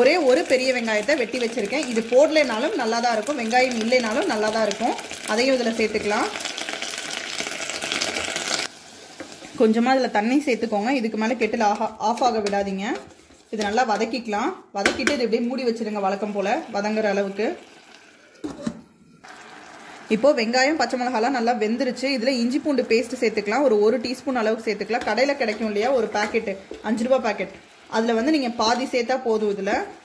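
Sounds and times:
onions sizzling in hot oil: 0.0s - 14.2s, 15.5s - 18.5s, 19.2s - 30.0s.

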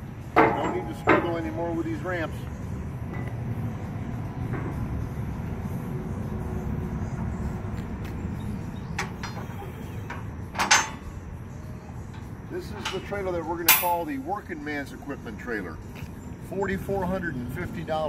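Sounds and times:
loud metal clank: 13.7s - 14.1s.

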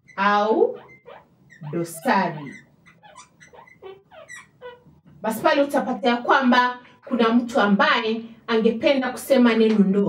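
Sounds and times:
marker pen squeaking on board: 0.0s - 5.0s.

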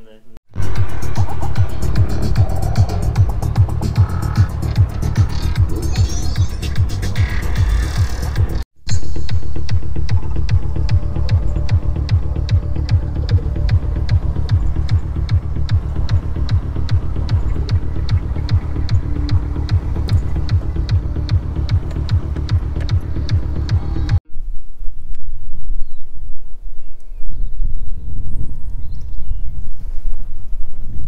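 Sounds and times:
fast-beat music with heavy bass: 0.6s - 24.2s.

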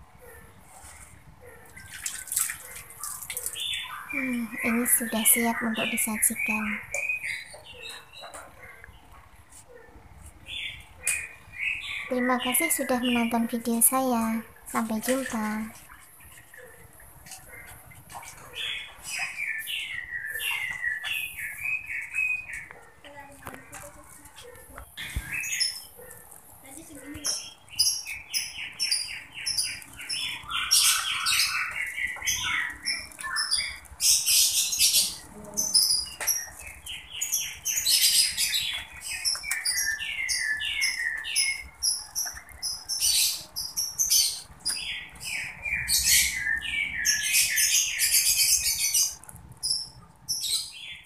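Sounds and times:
small birds chirping: 0.1s - 51.0s.

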